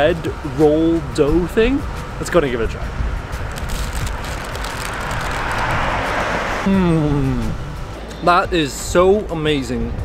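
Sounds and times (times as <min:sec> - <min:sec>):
car approaching: 0:00.0 - 0:09.0.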